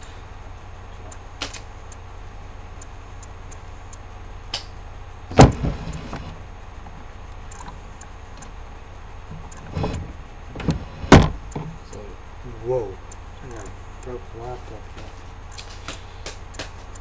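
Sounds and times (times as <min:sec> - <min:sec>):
steady low hum: 0:00.0 - 0:17.0
sharp knocks: 0:05.3 - 0:06.3, 0:09.5 - 0:11.8.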